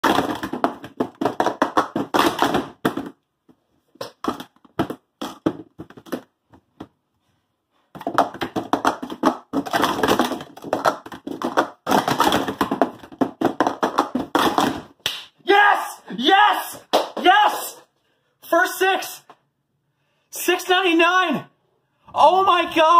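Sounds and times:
plastic cups clattering: 0.0s - 3.2s, 3.9s - 6.9s, 7.9s - 15.0s.

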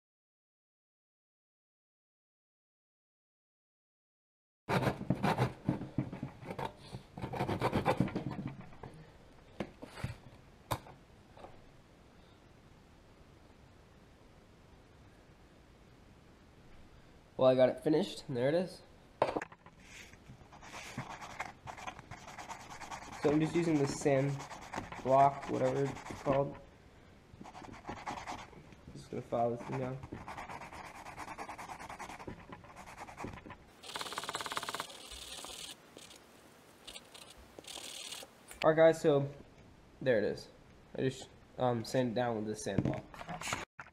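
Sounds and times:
wood rubbing on sanding block: 19.8s - 26.5s, 29.5s - 36.1s.

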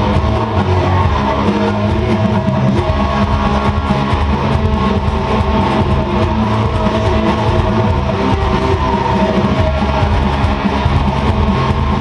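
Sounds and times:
distorted electric guitar strumming: 0.0s - 12.0s
rock band recording: 0.0s - 12.0s.

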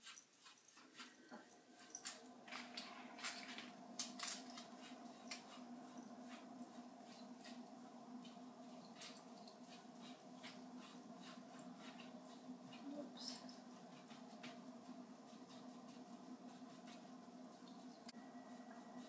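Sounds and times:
paintbrush scratching on metal: 0.0s - 19.0s
steady low hum: 0.2s - 19.0s.

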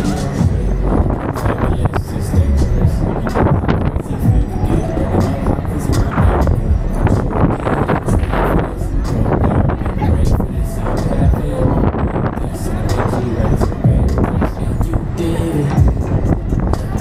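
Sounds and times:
fairground ride rumbling: 0.0s - 17.0s.

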